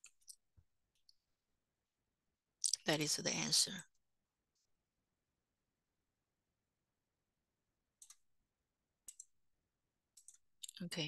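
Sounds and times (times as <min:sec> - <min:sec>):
computer mouse clicks: 0:08.0 - 0:08.3, 0:09.0 - 0:09.4, 0:10.1 - 0:10.8.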